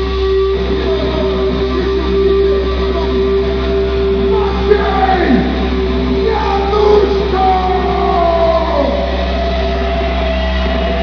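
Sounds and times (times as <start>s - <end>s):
live rock band music: 0.0s - 11.0s
ringing electric guitar notes: 0.0s - 11.0s.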